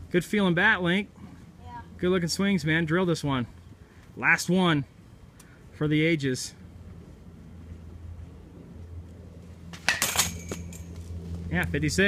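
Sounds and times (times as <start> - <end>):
low steady hum: 0.0 - 12.0
bat striking a ball: 9.7 - 10.8.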